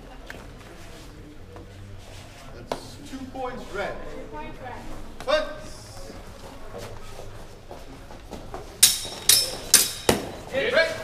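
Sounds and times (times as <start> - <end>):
steel swords clashing: 8.8 - 10.5.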